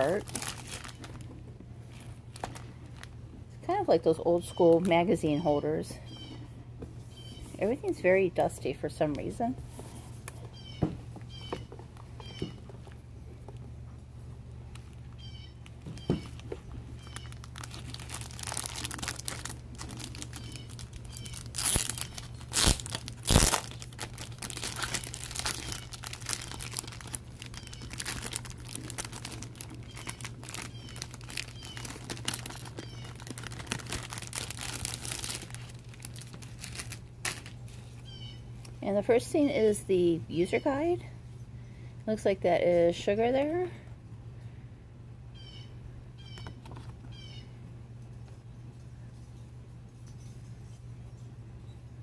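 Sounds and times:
plastic wrapping crinkling: 0:00.0 - 0:03.4, 0:14.6 - 0:38.1.

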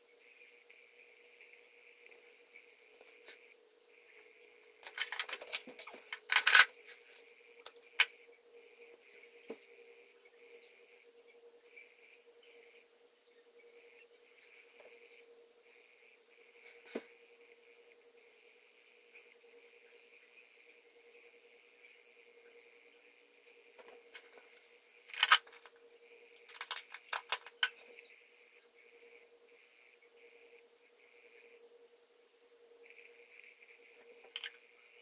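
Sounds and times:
faint high whine: 0:00.0 - 0:35.0
makeup items clicking and tapping: 0:26.4 - 0:27.8.

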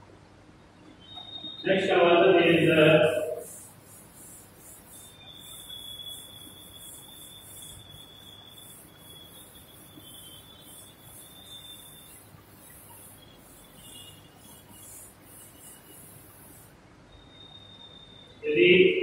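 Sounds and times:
thin high whine: 0:00.9 - 0:19.0
insects chirping: 0:01.0 - 0:19.0.

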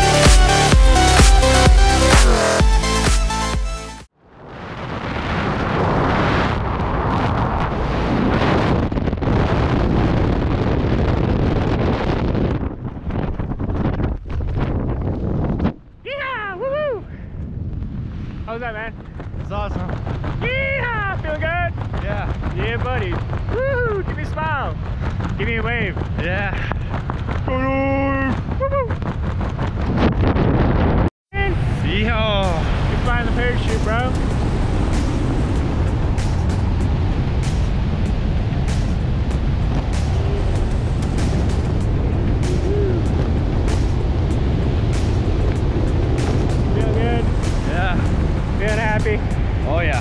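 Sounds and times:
freefall wind buffeting microphone: 0:04.1 - 0:50.0.

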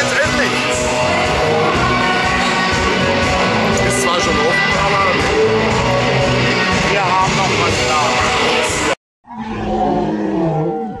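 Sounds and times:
dragon roar: 0:09.3 - 0:11.0.

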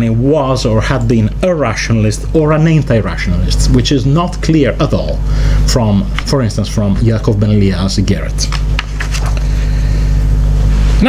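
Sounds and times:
low hum and rumble: 0:00.0 - 0:11.0
paper rustling: 0:08.4 - 0:09.7.

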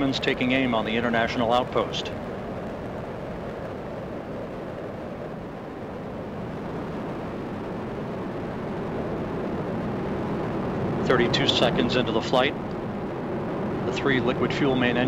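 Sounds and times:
rocket exhaust rumble: 0:00.0 - 0:15.0.

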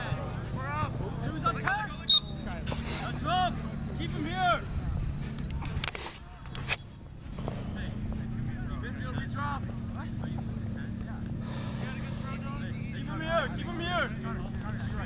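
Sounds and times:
steady low hum: 0:00.0 - 0:15.0
voices shouting across a field: 0:00.0 - 0:15.0.

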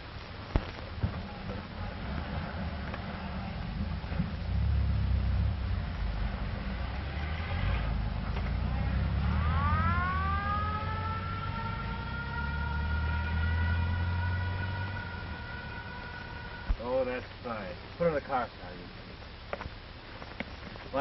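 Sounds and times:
car engine rumble: 0:00.0 - 0:21.0
mechanical siren wailing: 0:06.8 - 0:17.2.

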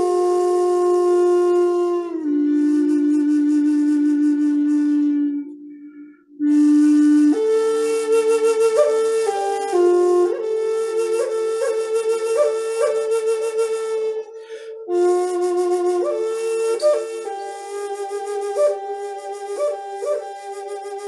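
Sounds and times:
wooden flute melody: 0:00.0 - 0:21.0.

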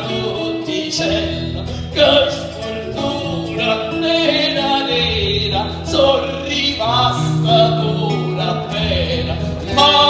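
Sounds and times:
acoustic guitar: 0:00.0 - 0:10.0
folk ensemble playing: 0:00.0 - 0:10.0
voices singing loudly: 0:00.0 - 0:10.0.

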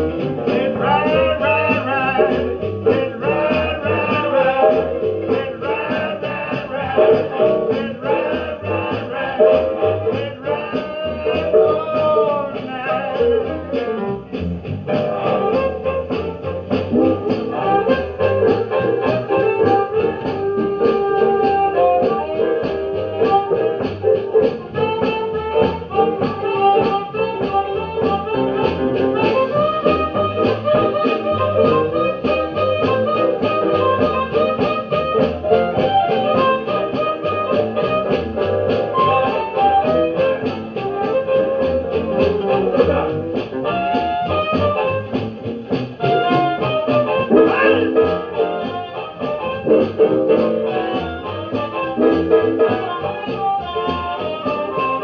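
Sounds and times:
blues band playing: 0:00.0 - 0:55.0.

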